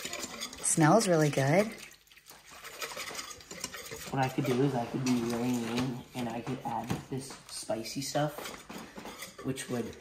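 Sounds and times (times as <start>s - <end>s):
whisk scraping metal bowl: 0.0s - 6.9s, 7.7s - 10.0s.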